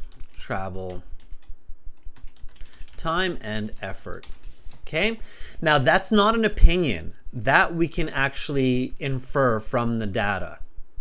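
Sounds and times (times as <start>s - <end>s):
typing on computer keyboard: 0.0s - 3.2s.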